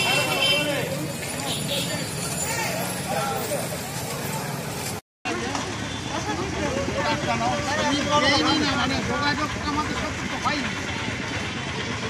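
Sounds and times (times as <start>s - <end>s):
crowd chatter: 0.0s - 12.0s
road traffic: 0.0s - 12.0s.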